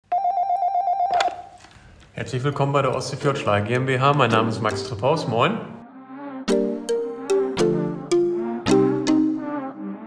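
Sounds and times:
telephone ringing: 0.0 - 1.6.

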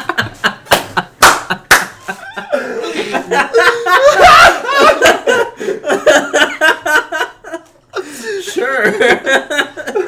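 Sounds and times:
sharp hand claps: 0.6 - 2.0.

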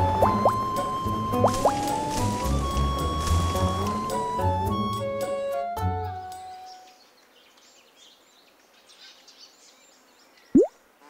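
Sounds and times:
bird chirps: 6.5 - 10.8.

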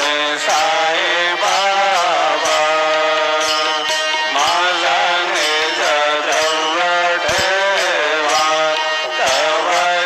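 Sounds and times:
devotional hymn chanting: 0.0 - 10.0
instrumental accompaniment: 0.0 - 10.0
percussive strikes: 0.0 - 10.0.

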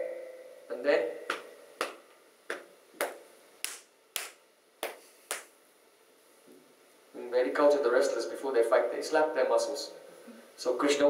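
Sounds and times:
hands slapping arms: 1.3 - 5.6.

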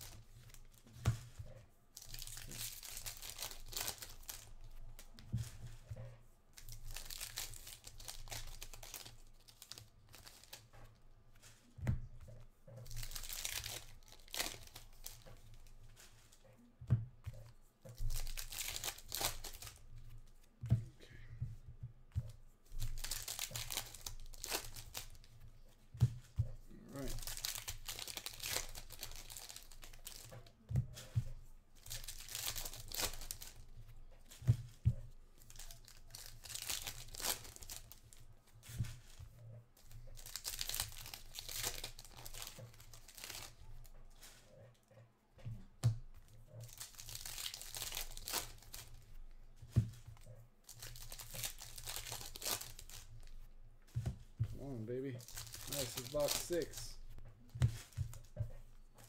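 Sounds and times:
foil wrappers tearing and crinkling: 2.0 - 5.1, 6.6 - 10.7, 12.8 - 15.2, 18.0 - 19.8, 22.7 - 25.2, 26.8 - 30.4, 31.8 - 33.6, 35.4 - 38.1, 40.1 - 43.6, 46.6 - 49.0, 50.7 - 53.4, 55.2 - 57.0.

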